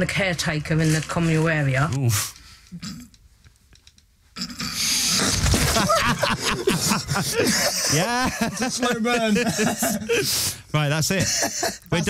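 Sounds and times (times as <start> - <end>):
laughter: 5.5 - 10.3, 11.2 - 12.0.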